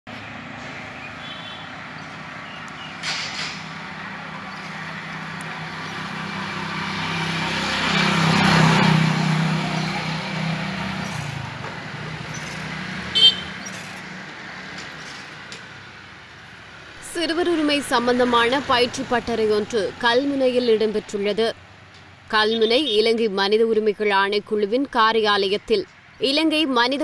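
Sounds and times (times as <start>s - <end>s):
vehicle engine passing by: 0.1s - 22.3s
street hum: 0.1s - 27.0s.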